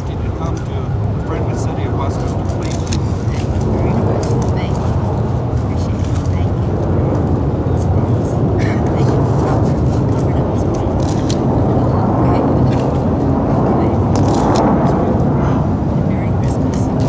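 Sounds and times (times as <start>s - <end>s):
indistinct voices: 0.0s - 17.0s
low outdoor rumble: 0.0s - 17.0s.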